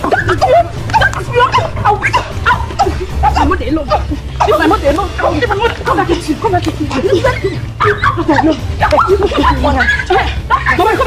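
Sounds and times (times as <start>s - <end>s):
background music with bass: 0.0s - 11.0s
women shouting: 0.0s - 11.0s.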